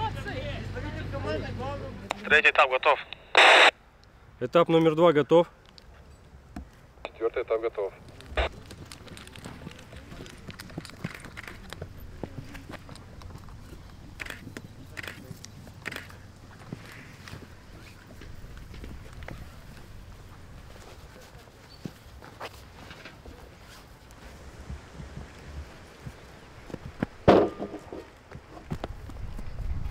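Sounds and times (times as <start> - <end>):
distant voices and calls: 5.1 - 28.6
running footsteps: 8.0 - 29.9.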